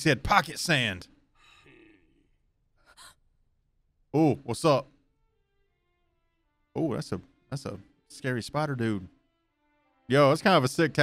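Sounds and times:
person gasping: 0:01.4 - 0:03.2.

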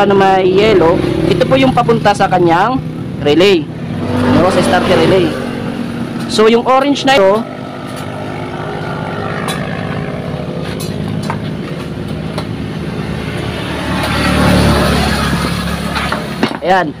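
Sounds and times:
rush of noise: 0:00.0 - 0:17.0.

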